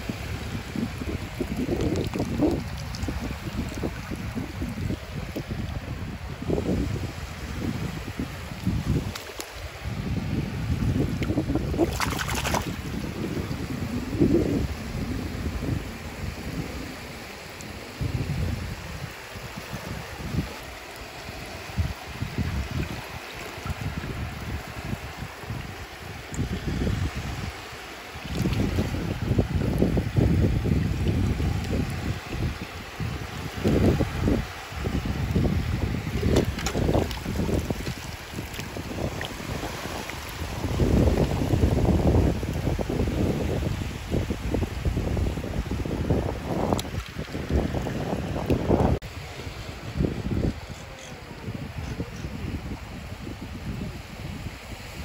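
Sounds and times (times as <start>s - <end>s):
seawater lapping at shoreline: 0.0s - 55.0s
wind buffeting microphone: 0.0s - 55.0s.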